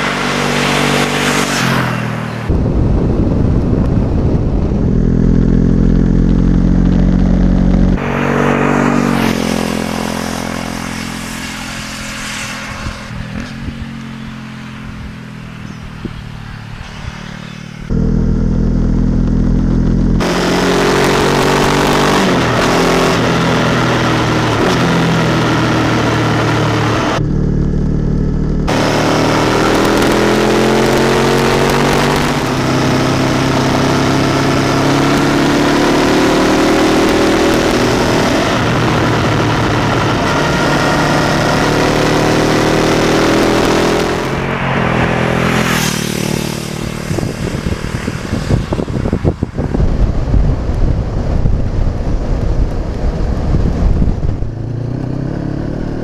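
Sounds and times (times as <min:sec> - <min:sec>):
heavy wind rush: 0:00.0 - 0:18.0, 0:28.6 - 0:56.0
motorcycle engine: 0:00.0 - 0:56.0
motorcycle engine revving up: 0:00.0 - 0:56.0.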